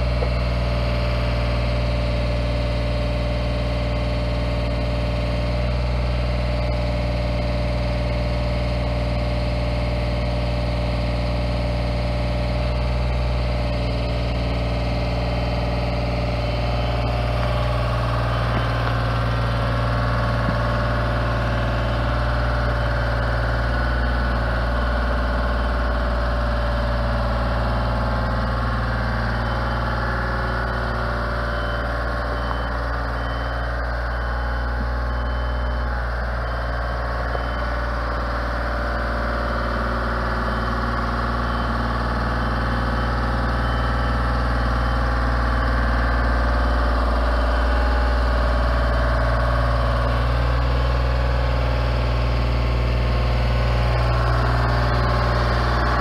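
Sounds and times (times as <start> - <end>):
engine running steadily: 0.0 - 56.0
high-pitched whine: 0.0 - 56.0.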